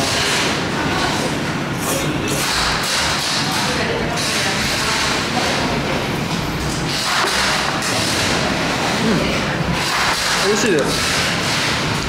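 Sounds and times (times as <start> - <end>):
loud steady rumbling: 0.0 - 12.0.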